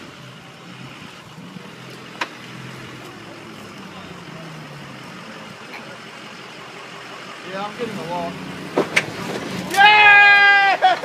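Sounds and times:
truck engine running: 0.0 - 11.0.

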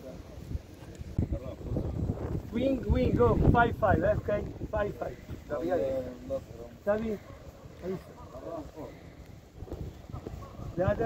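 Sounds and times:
wind rumble on microphone: 0.0 - 6.9, 8.8 - 11.0
faint voices talking: 0.0 - 11.0.

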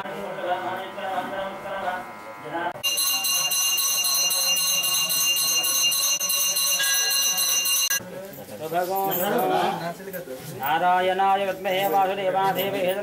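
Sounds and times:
hand bell ringing rapidly: 2.8 - 8.0.

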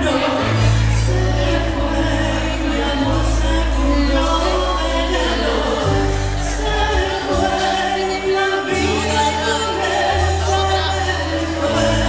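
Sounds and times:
bass guitar: 0.0 - 12.0
woman singing: 0.0 - 12.0.

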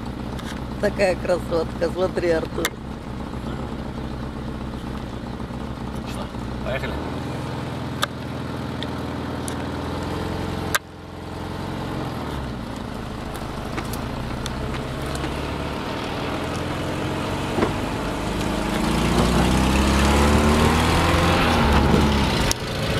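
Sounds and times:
car engine accelerating: 0.0 - 22.9.

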